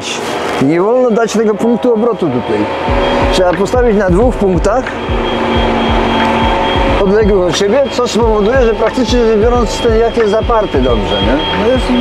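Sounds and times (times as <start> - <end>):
background music with low thumps: 1.6 - 12.0.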